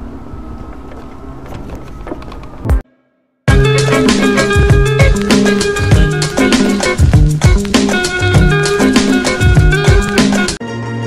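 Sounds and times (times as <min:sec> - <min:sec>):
vehicle rumbling along a road: 0:00.0 - 0:02.8.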